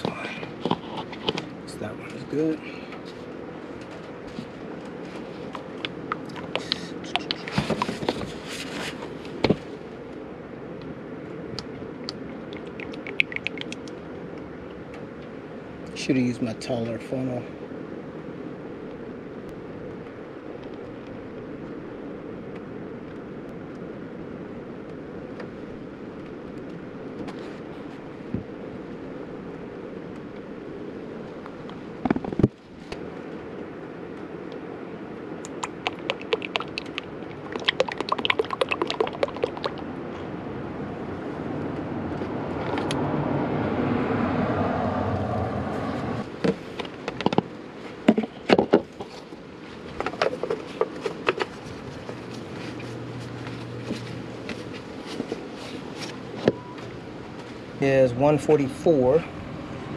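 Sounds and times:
rapid clicking: 35.4s - 39.8s
oil pouring through a funnel: 35.5s - 39.9s.

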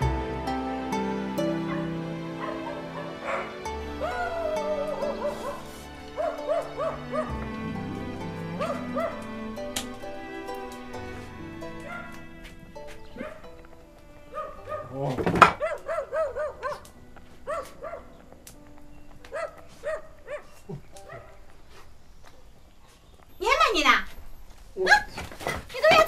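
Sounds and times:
soft music: 0.0s - 22.8s.

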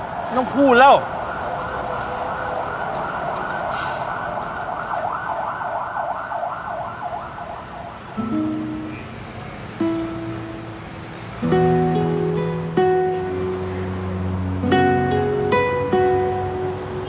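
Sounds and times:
emergency vehicle siren wailing: 0.0s - 10.8s.

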